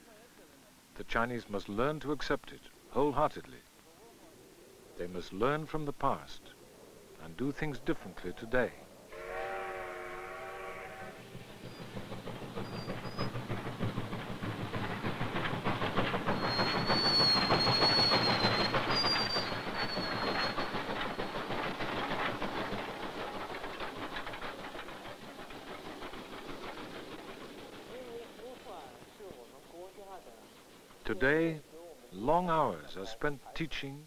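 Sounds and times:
train wheels clattering on rails: 0:11.0 - 0:32.8
high wheel squeals: 0:12.6 - 0:13.4, 0:16.3 - 0:21.4.

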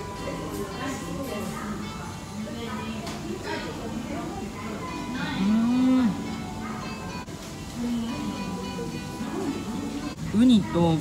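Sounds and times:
soft background music: 0:00.0 - 0:11.0
woman humming mmm: 0:05.4 - 0:06.3.

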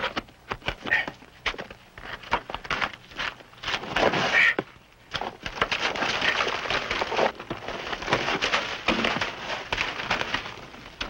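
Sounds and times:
ice crunching and crackling: 0:00.0 - 0:11.0.

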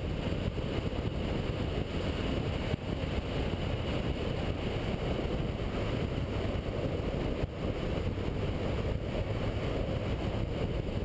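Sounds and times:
wind rush on microphone: 0:00.0 - 0:11.0.

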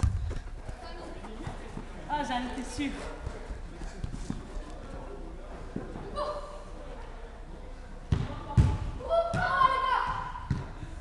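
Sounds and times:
football kicked and bouncing: 0:00.0 - 0:00.8, 0:08.1 - 0:10.8
child shouting: 0:09.0 - 0:10.3.

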